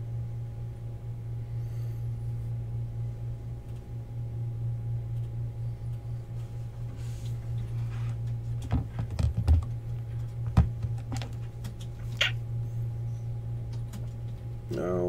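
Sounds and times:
low electrical hum: 0:00.0 - 0:15.0.

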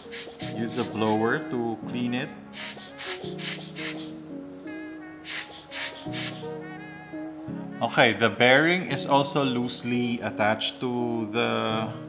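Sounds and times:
air blower puffs: 0:00.0 - 0:01.2, 0:02.5 - 0:04.2, 0:05.2 - 0:06.5.

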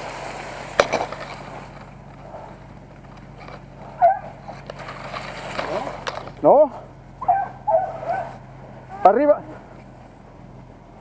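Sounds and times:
hounds baying: 0:03.4 - 0:04.8, 0:05.5 - 0:09.9.

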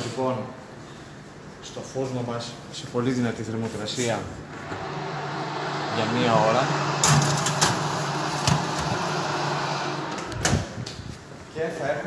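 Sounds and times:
fan noise with low hum: 0:00.0 - 0:12.0.

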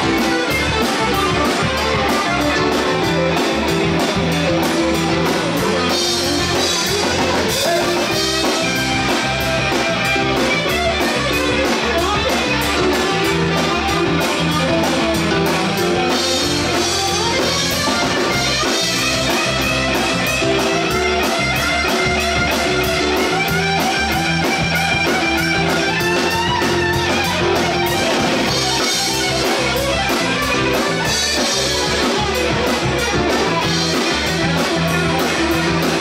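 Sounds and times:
bass guitar: 0:00.0 - 0:36.0
electric guitar: 0:00.0 - 0:36.0
steady drum beat: 0:00.0 - 0:36.0.

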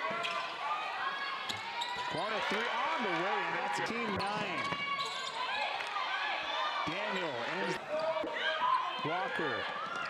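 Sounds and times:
shoes squeaking on hardwood court: 0:01.5 - 0:02.4, 0:04.2 - 0:05.4.

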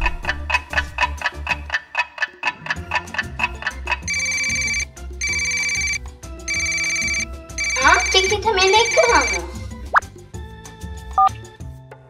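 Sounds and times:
light music with plucked beat: 0:00.0 - 0:12.0
telephone ringing: 0:04.0 - 0:09.6.

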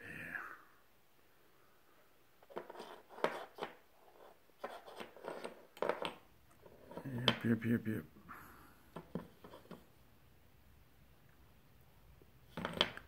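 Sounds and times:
wooden chess pieces clicking: 0:04.7 - 0:07.4, 0:12.5 - 0:13.0.

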